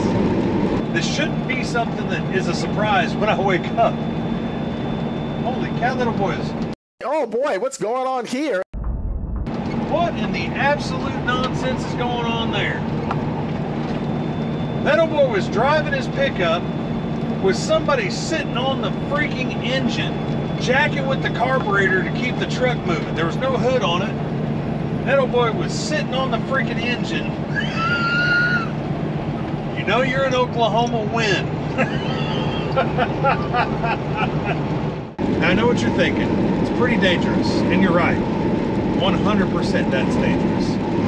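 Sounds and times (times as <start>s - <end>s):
road noise: 0.0s - 6.8s, 9.4s - 41.0s
truck diesel engine drone: 0.0s - 6.8s, 9.4s - 41.0s
man laughing: 27.5s - 28.7s, 31.7s - 34.7s.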